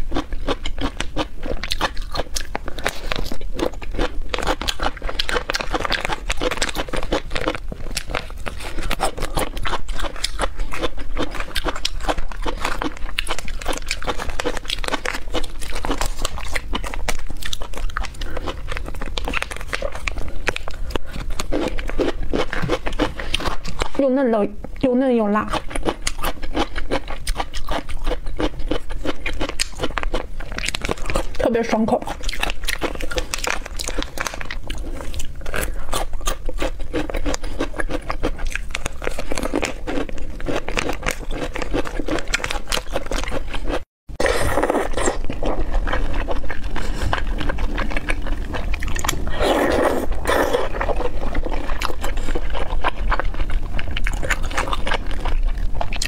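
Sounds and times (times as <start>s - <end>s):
crunching and chewing: 0.0s - 56.0s.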